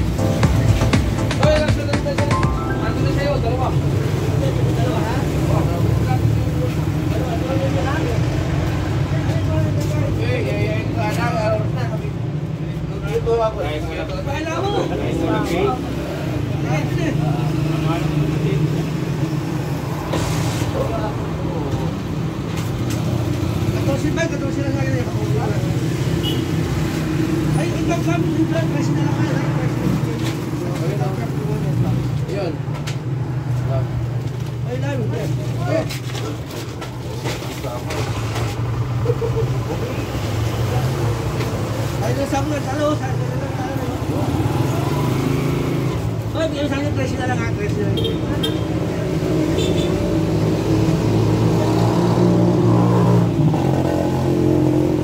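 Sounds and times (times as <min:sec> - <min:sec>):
people talking: 0:00.5 - 0:18.9, 0:39.1 - 0:45.0.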